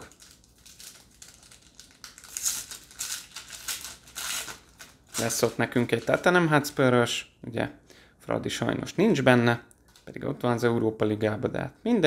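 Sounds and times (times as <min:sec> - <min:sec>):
wrapper tearing: 0:00.0 - 0:06.3
card pack wrapper rustling: 0:00.0 - 0:06.4.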